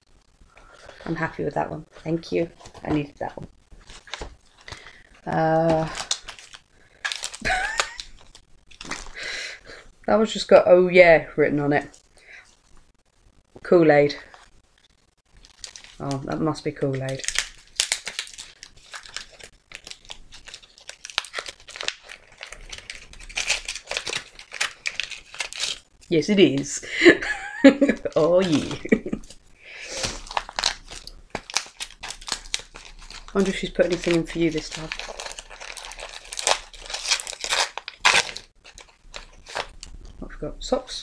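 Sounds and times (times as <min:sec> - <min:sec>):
gift wrapping crinkling and tearing: 0:00.0 - 0:10.5, 0:11.8 - 0:12.9, 0:13.9 - 0:40.3.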